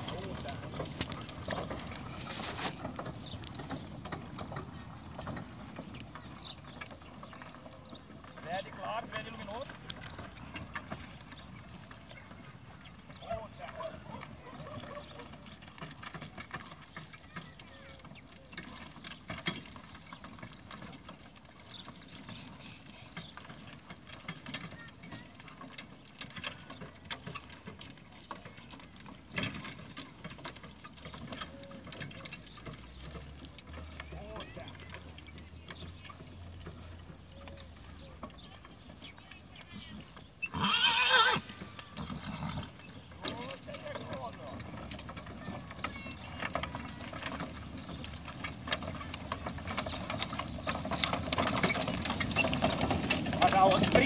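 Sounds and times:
horse hoofbeats: 0.0 - 54.0
wooden cart rattling: 0.0 - 54.0
horse whinny: 40.4 - 42.9.

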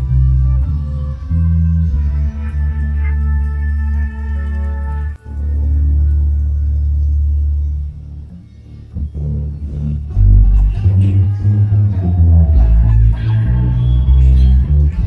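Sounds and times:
electric bass guitar notes: 0.0 - 15.0.

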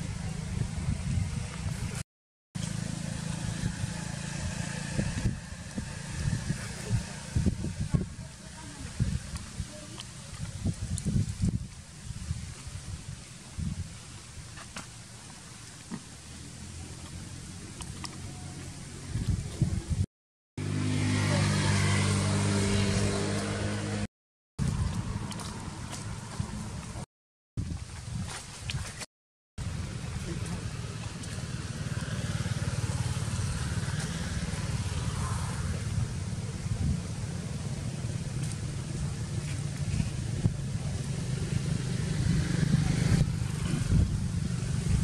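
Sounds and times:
traffic rumble on a road: 0.0 - 2.0, 2.6 - 27.1, 29.6 - 45.0
vehicle engine humming: 2.6 - 10.5, 14.9 - 20.0, 20.6 - 27.1, 29.6 - 45.0.

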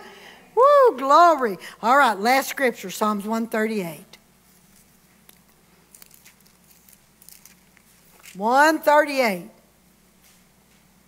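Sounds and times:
low steady hum: 0.0 - 11.0
pages being turned: 4.4 - 8.4.

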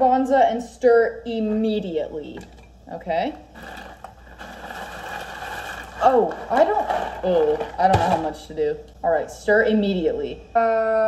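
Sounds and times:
water boiling and bubbling: 3.4 - 8.3.

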